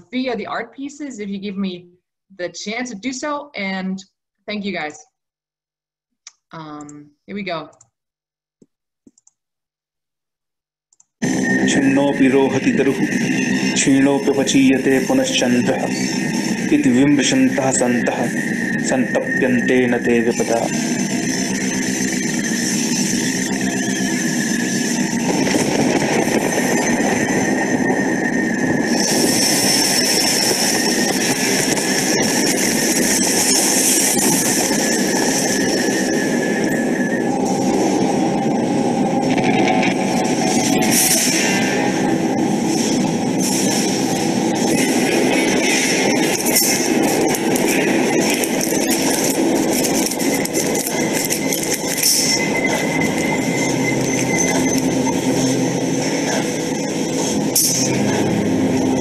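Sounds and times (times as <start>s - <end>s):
dense harsh noise: 11.2s - 59.0s.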